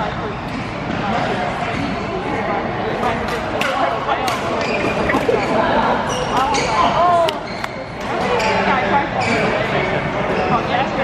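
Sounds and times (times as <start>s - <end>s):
rackets hitting shuttlecock: 3.2s - 5.4s.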